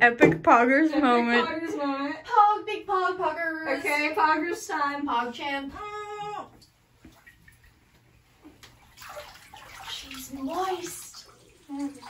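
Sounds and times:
bathwater sloshing and splashing: 6.2 - 12.0.

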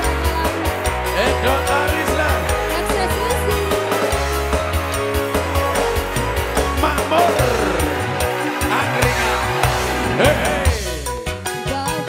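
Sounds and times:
live band music with deep bass: 0.0 - 12.0.

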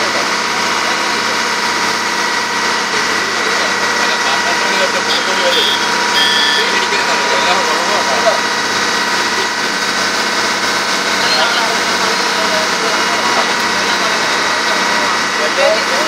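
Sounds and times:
boat engine droning: 0.0 - 16.0
people talking: 0.0 - 16.0.

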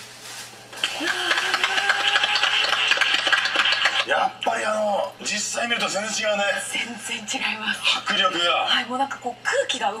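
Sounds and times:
small group clapping: 0.8 - 4.2.

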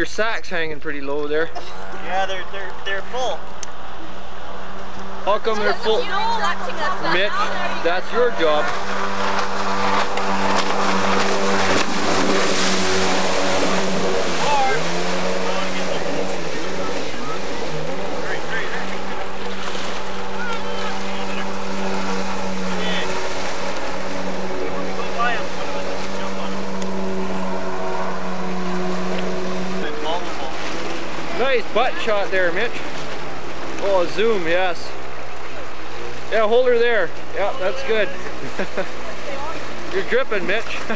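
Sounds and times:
jet ski engine running: 1.2 - 40.9.

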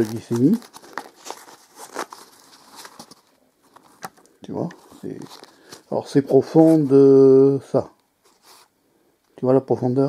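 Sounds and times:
fabric pouch rustling: 0.0 - 6.8.

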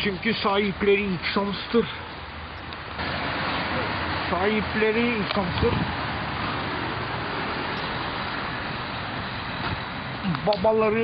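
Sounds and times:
street traffic hum: 0.0 - 11.0.

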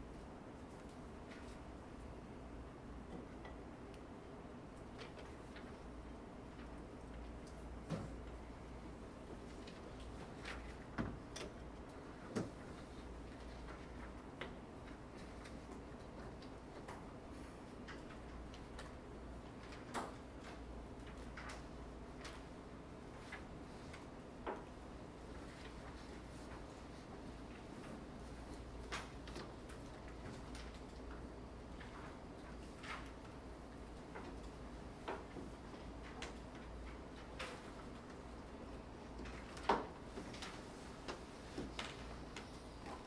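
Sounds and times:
ventilation hum: 0.0 - 43.0.

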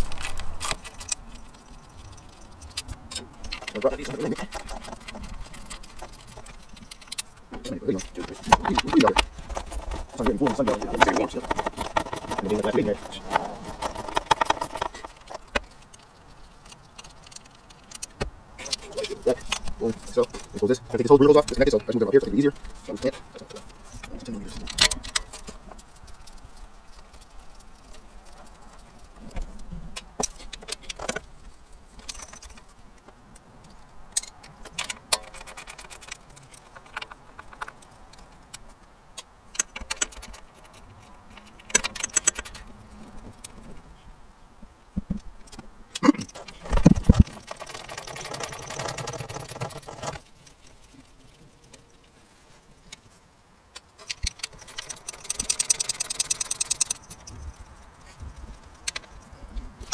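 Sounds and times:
metal tools clinking and rattling: 0.0 - 26.4, 32.0 - 32.7, 39.6 - 42.7, 46.2 - 51.1, 54.0 - 59.4
rapid clicking: 0.0 - 28.9, 46.3 - 51.0, 53.9 - 57.8.

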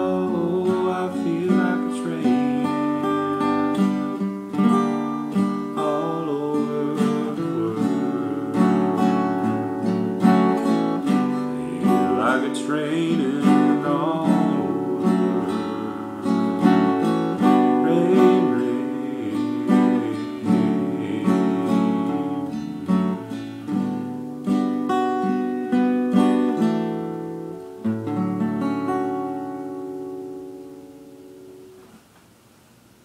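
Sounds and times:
acoustic guitar playing: 0.0 - 33.0.

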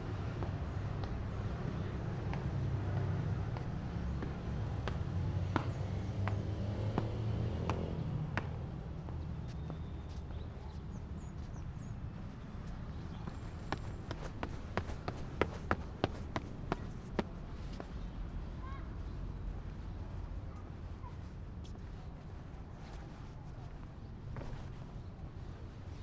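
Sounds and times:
footsteps on concrete stairs: 2.2 - 11.5, 12.6 - 18.0.

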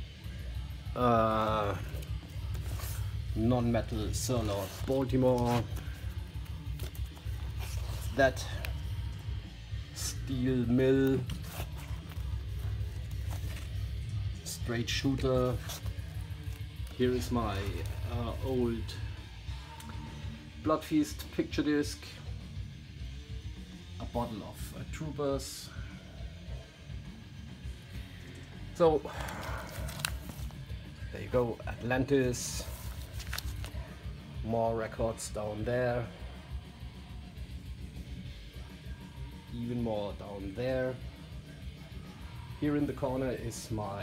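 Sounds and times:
background music: 0.0 - 44.0
vinyl record sleeves rustling: 0.4 - 20.0, 28.7 - 36.0.

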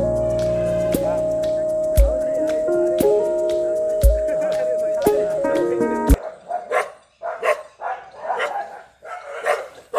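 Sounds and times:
background music: 0.0 - 9.7
dog barking: 6.2 - 9.9.

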